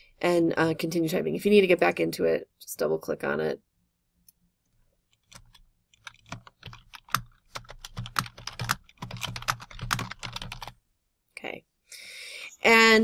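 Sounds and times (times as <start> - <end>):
typing on computer keyboard: 5.2 - 10.7.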